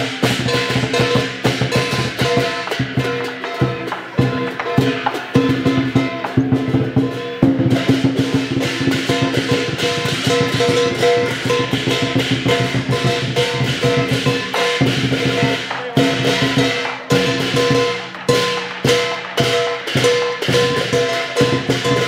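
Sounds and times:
drum roll: 0.0s - 22.0s
heavy drum strikes: 0.0s - 22.0s
ringing metal percussion: 0.0s - 22.0s.

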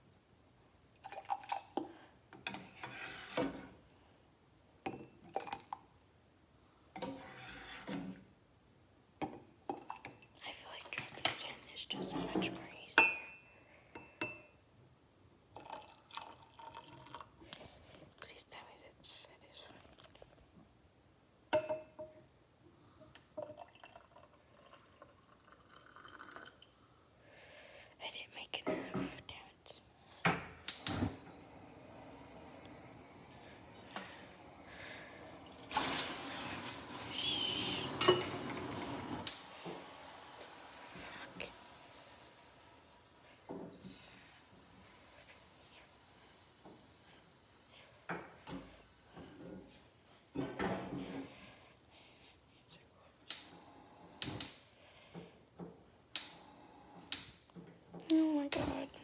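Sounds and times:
pots and dishes clattering: 37.9s - 39.1s.

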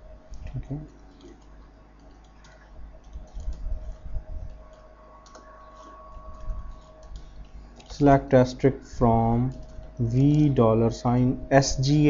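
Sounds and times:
faint steady hum: 0.0s - 12.0s
typing on computer keyboard: 1.1s - 4.0s.

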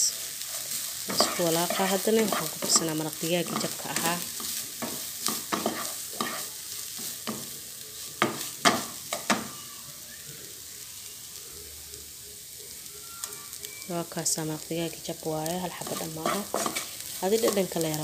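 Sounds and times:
meat and onion sizzling in a pan: 0.0s - 18.0s
wooden spatula scraping and tapping: 0.7s - 7.5s, 8.2s - 9.5s, 15.7s - 17.8s.

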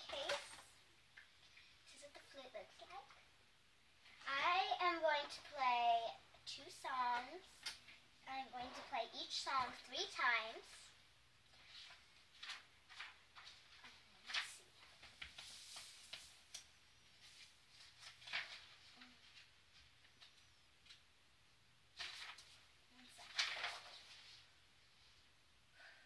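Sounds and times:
book pages rustling: 0.0s - 0.6s, 11.5s - 21.0s, 22.0s - 24.5s.

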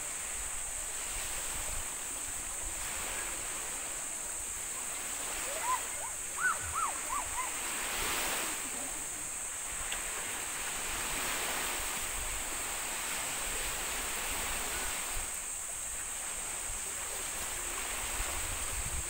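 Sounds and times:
small waves washing: 0.0s - 19.0s.

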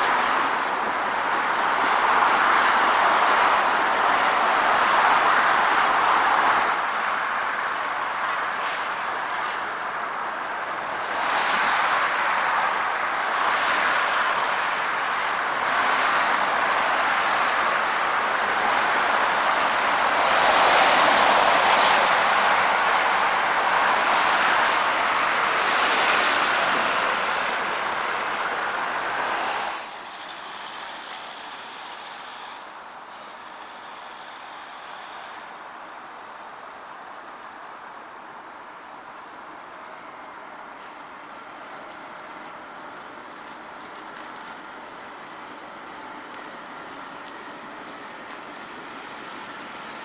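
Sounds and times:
passing cars and trucks: 0.0s - 50.0s.

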